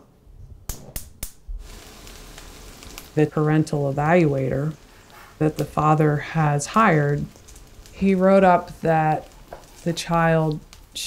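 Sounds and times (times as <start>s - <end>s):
food sizzling in a skillet: 1.6s - 11.0s.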